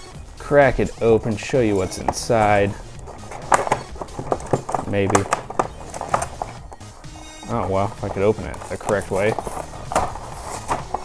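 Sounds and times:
plastic packaging crackling: 2.2s - 11.0s.

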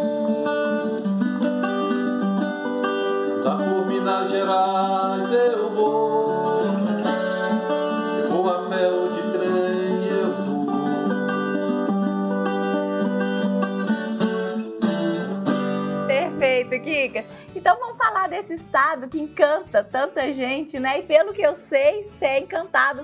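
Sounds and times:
viola strummed and plucked: 0.0s - 23.0s
man singing: 3.4s - 11.3s
woman talking: 16.1s - 23.0s.

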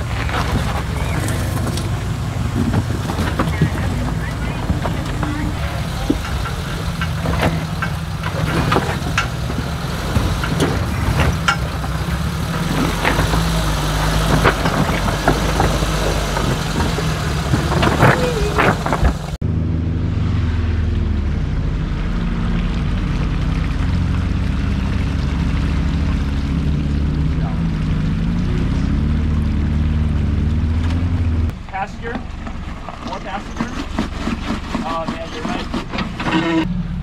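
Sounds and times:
off-road engine at low revs: 0.0s - 37.0s
sharp knocks and clicks: 1.5s - 12.0s.

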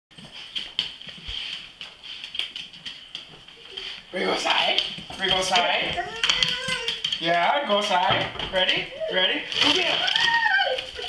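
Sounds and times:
dogs moving about: 0.1s - 11.0s.

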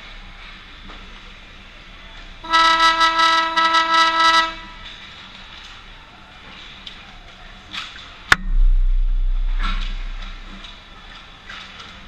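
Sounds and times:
horn blast: 2.4s - 4.9s.

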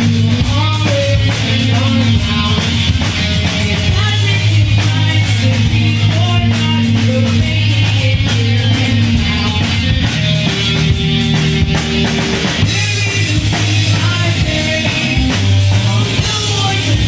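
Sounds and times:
bass guitar: 0.0s - 17.0s
drum kit beat: 0.0s - 17.0s
electric guitar: 0.0s - 17.0s.

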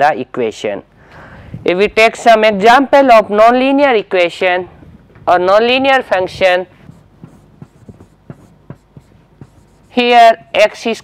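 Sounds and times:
marker writing on a whiteboard: 6.8s - 11.0s.

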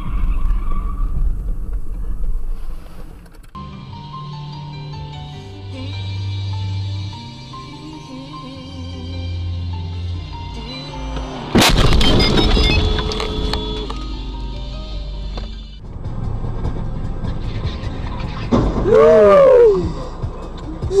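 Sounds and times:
car radio music: 10.2s - 15.7s
car collision crash: 11.4s - 13.8s, 18.2s - 19.3s
loud shout: 18.8s - 19.9s.

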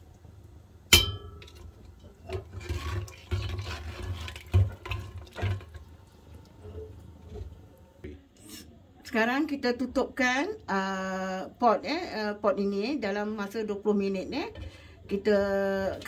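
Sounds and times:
metal spoon clanging on pot: 0.9s - 1.7s
spoon stirring liquid in pot: 1.4s - 7.6s.

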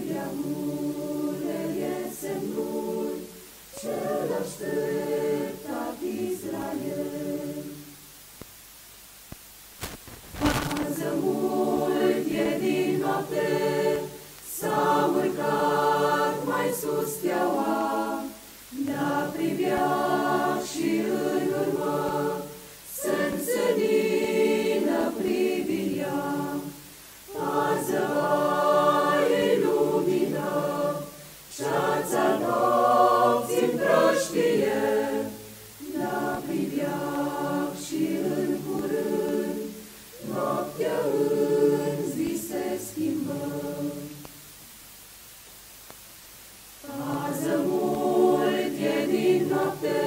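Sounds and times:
mixed choir singing a hymn: 0.0s - 8.0s, 10.4s - 44.4s, 46.8s - 50.0s.

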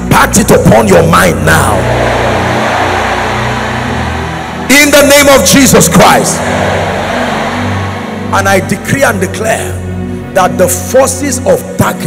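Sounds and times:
keyboard sustained notes: 0.0s - 12.0s
man speaking: 4.7s - 6.4s.

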